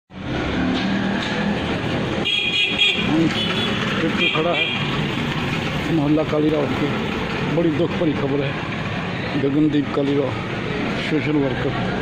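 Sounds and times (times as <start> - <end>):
horn tooting: 2.2 - 5.0.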